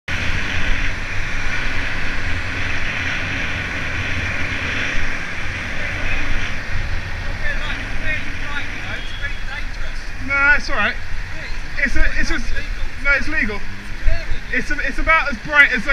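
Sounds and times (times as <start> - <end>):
road noise: 0.0 - 15.9
wind on microphone: 0.0 - 15.9.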